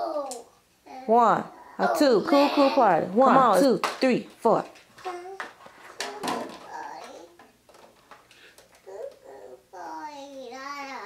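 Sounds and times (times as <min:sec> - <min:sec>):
small children's voices: 0:00.0 - 0:02.8, 0:05.0 - 0:07.5, 0:08.8 - 0:11.0.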